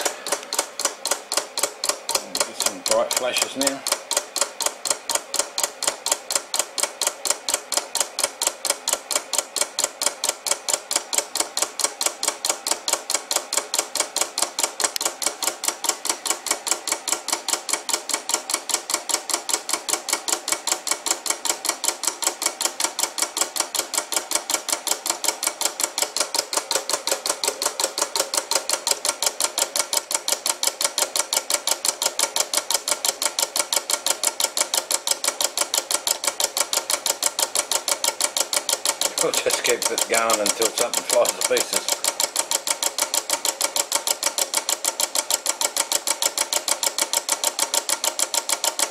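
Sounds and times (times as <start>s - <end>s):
fast train of motor clicks: 0.0s - 48.9s.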